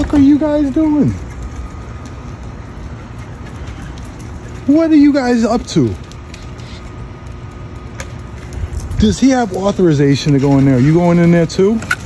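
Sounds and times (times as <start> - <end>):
street background rumble: 0.0 - 12.0.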